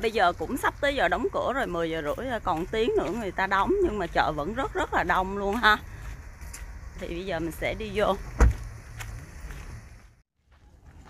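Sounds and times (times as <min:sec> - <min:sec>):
loud sharp thump: 0:08.3 - 0:08.6.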